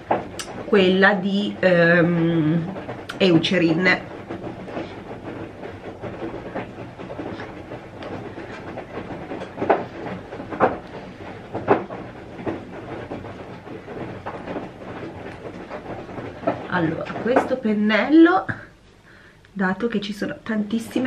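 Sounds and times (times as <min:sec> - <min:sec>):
washing machine running: 0:00.0 - 0:21.0.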